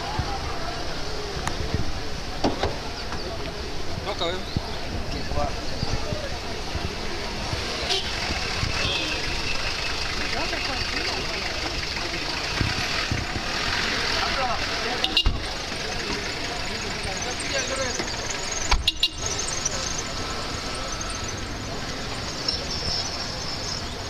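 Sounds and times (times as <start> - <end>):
car engines running: 0.0 - 24.0
crowd chatter: 0.0 - 24.0.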